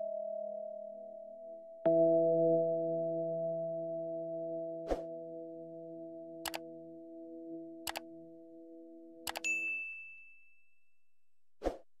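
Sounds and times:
notification bell ding: 9.3 - 10.3.

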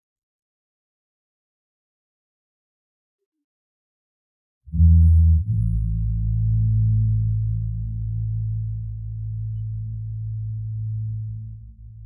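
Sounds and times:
electric bass long low note: 4.7 - 12.0.

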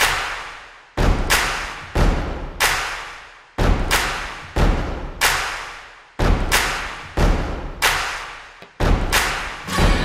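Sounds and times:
heavy booming percussion hits: 9.7 - 10.0.

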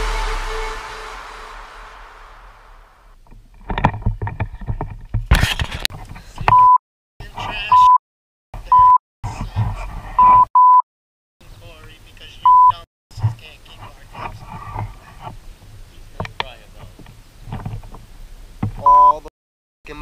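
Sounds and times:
censor bleeps: 12.5 - 12.8, 18.8 - 19.3.

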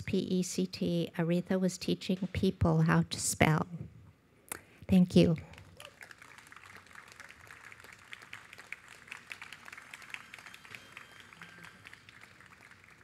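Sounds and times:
small audience applause: 5.5 - 13.0.

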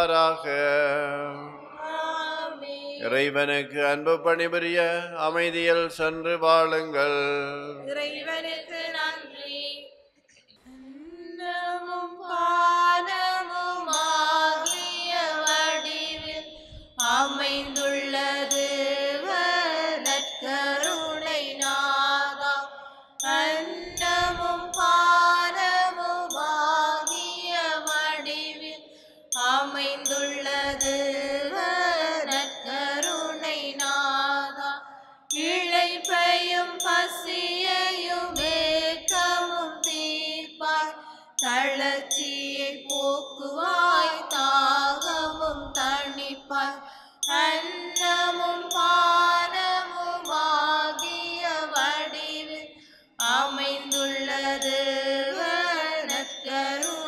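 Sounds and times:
person singing a chant-like hymn: 0.0 - 9.9, 10.7 - 57.0.

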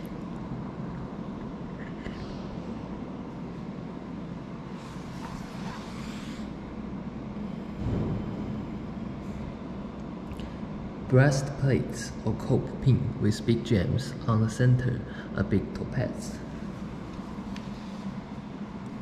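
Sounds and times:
low room rumble: 0.0 - 19.0.

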